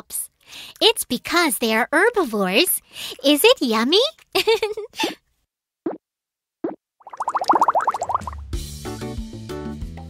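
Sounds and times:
cartoon plops: 6.6s - 8.4s
rising bubbly pops: 6.6s - 8.5s.

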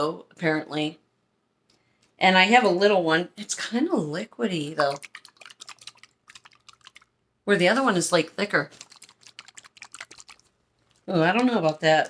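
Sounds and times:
plastic glue bottle shaken: 4.8s - 7.1s, 8.6s - 12.0s
liquid sloshing with clicks: 4.8s - 7.2s, 8.6s - 12.0s.

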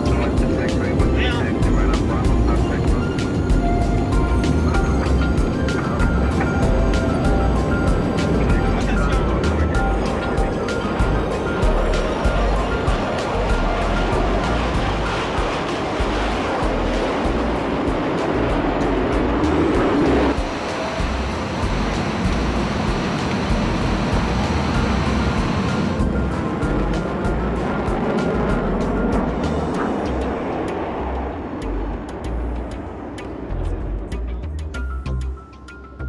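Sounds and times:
jet engines from inside cabin: 0.0s - 33.5s
music: 0.0s - 36.0s.

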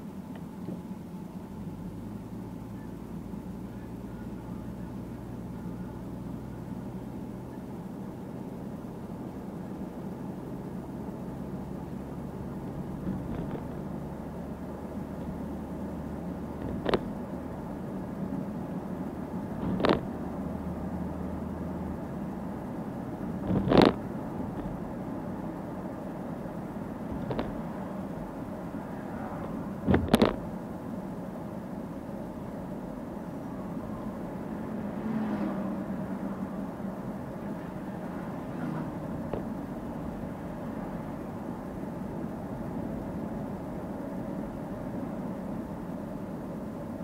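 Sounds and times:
car engine and road noise: 0.0s - 47.0s.

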